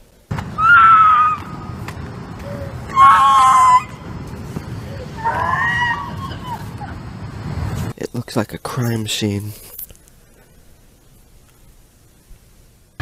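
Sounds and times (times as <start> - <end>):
low rumble of street noise: 0.0 - 13.0.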